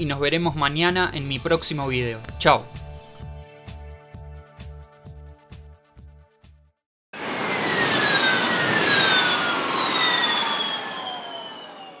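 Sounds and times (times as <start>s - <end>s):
electric race car whine passing: 7.2s - 12.0s.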